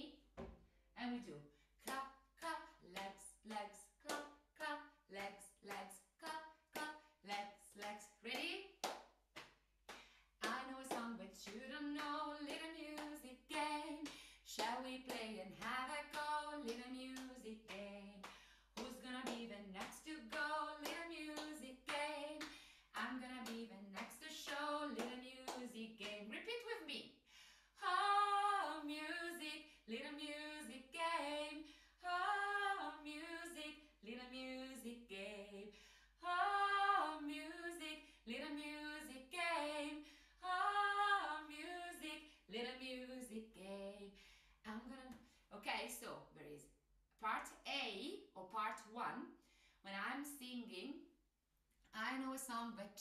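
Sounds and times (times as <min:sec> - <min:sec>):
woman singing: 0:01.0 - 0:08.7, 0:10.4 - 0:27.0, 0:27.8 - 0:46.3
hand claps and body slaps: 0:01.8 - 0:26.3.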